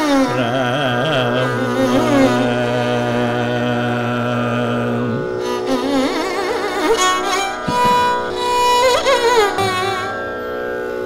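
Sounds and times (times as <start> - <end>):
man singing long held note: 0.0 - 6.2
classical music accompaniment: 7.2 - 10.2.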